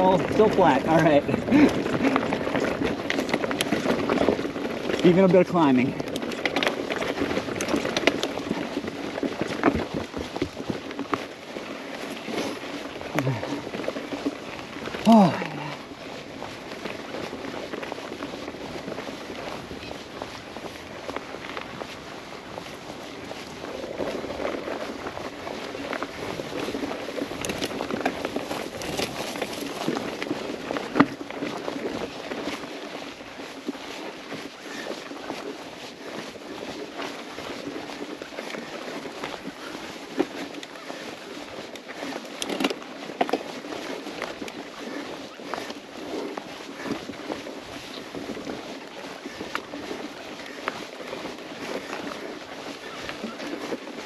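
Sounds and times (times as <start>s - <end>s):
bike rattling and knocking: 0.0s - 54.0s
bike tyres rolling on dirt: 0.0s - 54.0s.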